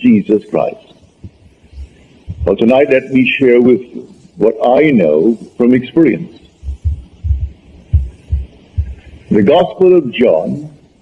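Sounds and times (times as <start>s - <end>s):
faint recording hiss: 0.0s - 11.0s
dull low thumps: 1.2s - 2.6s, 6.6s - 9.4s.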